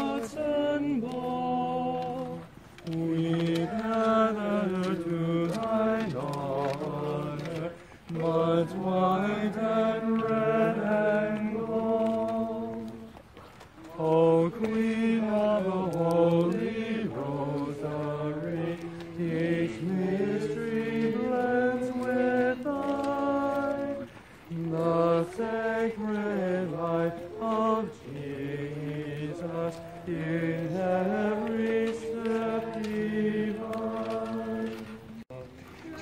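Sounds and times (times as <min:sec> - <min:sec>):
voices singing a hymn: 0:00.0 - 0:36.0.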